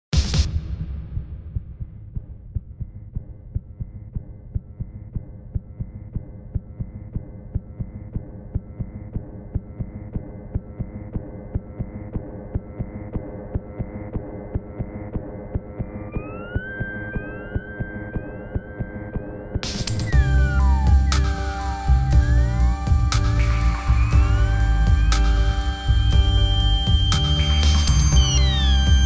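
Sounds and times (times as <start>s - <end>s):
throbbing heartbeat pulse: 0.2s - 29.0s.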